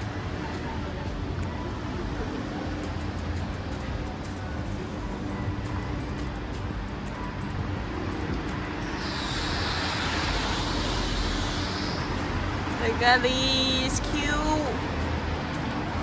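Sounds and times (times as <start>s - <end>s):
low rumble of road traffic: 0.0s - 16.0s
vehicle passing hiss: 8.7s - 16.0s.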